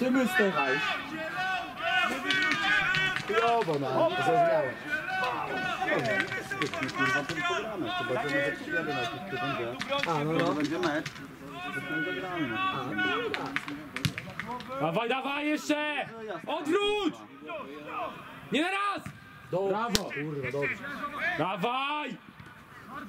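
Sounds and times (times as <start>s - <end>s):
men calling and talking: 0.0s - 23.0s.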